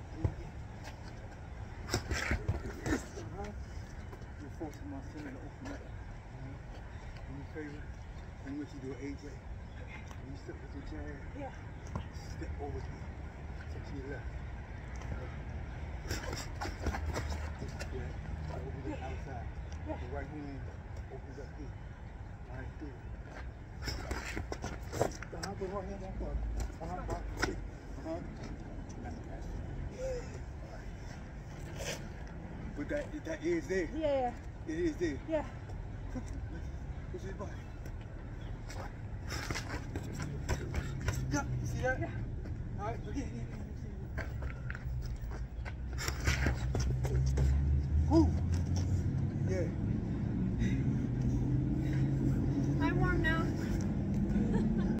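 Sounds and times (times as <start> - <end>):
outdoor background rumble: 21.2 - 55.0.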